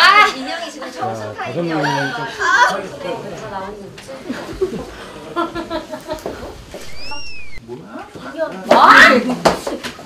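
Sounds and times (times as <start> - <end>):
high whistle-like squeak: 6.8 - 7.6.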